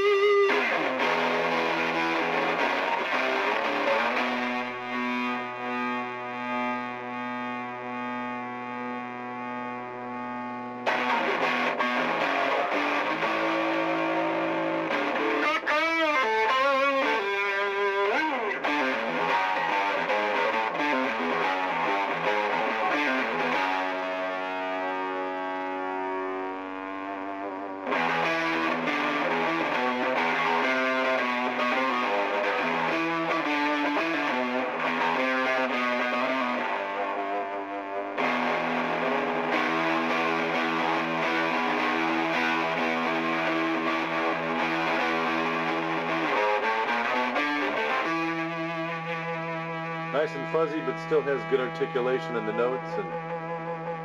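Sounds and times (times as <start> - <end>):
distorted electric guitar: 0.0 - 54.0.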